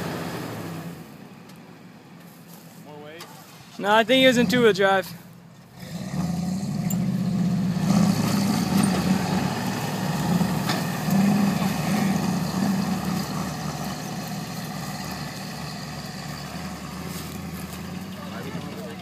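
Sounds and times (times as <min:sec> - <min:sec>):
truck engines running under load: 0:00.0 - 0:19.0
tires spinning on dirt: 0:03.4 - 0:19.0.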